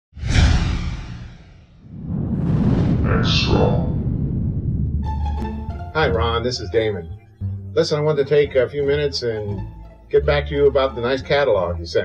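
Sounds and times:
whoosh with deep rumble: 0.1s - 6.0s.

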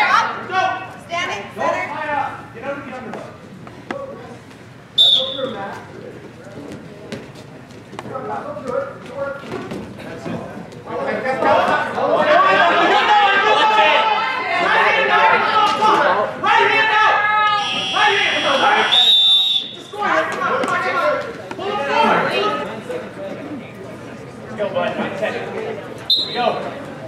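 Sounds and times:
crowd chatter: 0.0s - 27.0s
voices in a hall: 0.0s - 27.0s
referee's whistle blast: 5.0s - 5.6s, 17.6s - 19.9s, 26.1s - 26.6s.

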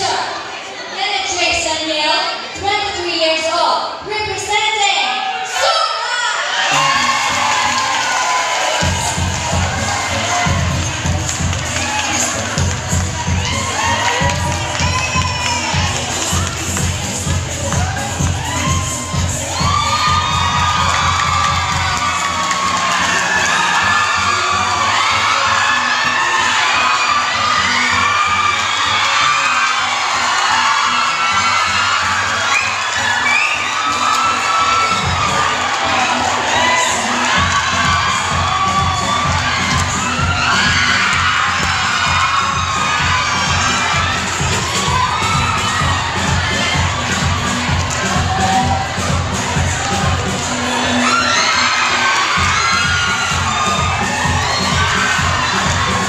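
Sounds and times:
audience shouting and cheering: 0.0s - 56.0s
dance music with steady beat: 6.7s - 56.0s.

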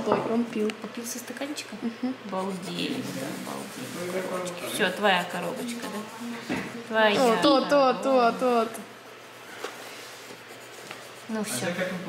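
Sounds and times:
soft rubbing noise: 2.3s - 7.4s, 8.4s - 12.0s.

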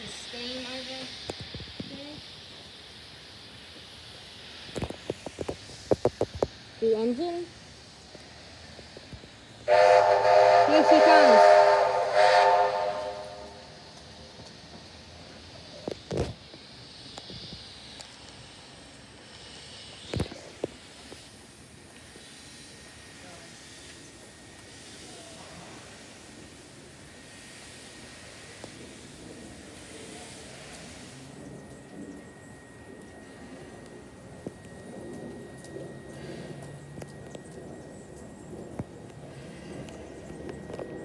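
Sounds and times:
steam hissing: 0.0s - 41.0s
steam locomotive whistle: 9.6s - 13.9s.

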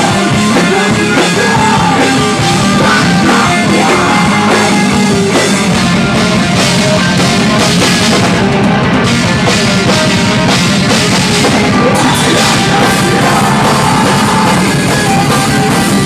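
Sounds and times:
metal band playing: 0.0s - 16.0s.

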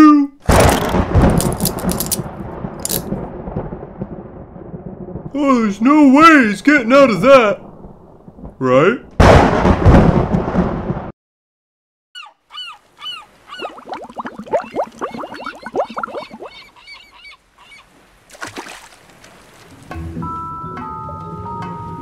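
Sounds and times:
thunder clap: 0.4s - 11.1s
cartoon seagulls crying: 12.2s - 14.0s, 15.2s - 18.0s
light music with bell-like notes: 20.1s - 22.0s.

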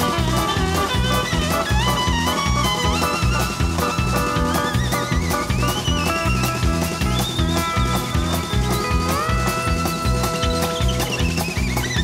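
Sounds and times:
bass and drum beat: 0.0s - 12.0s
fiddle melody: 0.0s - 12.0s
steel guitar: 0.0s - 12.0s.

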